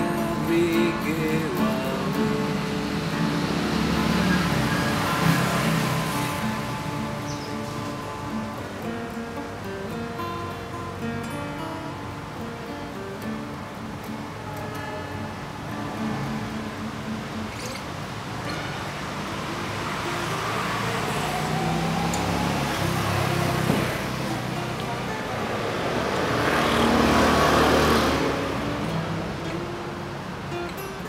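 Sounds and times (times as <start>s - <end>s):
acoustic guitar fingerpicked: 0.0s - 31.0s
road traffic noise: 0.0s - 31.0s.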